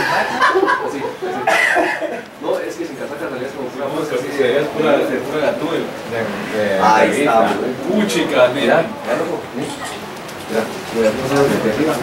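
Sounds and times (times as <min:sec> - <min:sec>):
indistinct talk: 0:00.0 - 0:12.0.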